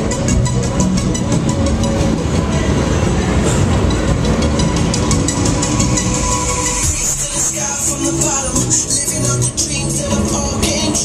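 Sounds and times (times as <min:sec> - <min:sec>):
fairground music: 0:00.0 - 0:11.0
thrill ride rumbling: 0:00.0 - 0:11.0.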